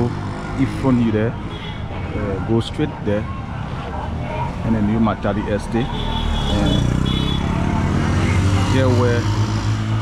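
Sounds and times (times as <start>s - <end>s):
motorcycle engines running: 2.0s - 10.0s.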